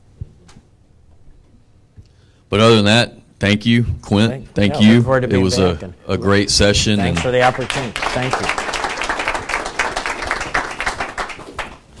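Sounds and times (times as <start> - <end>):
small group applauding: 7.0 - 12.0.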